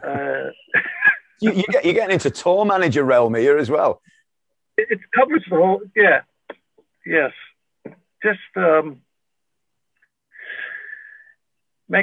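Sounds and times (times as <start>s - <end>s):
man breathing in: 10.3s - 11.4s.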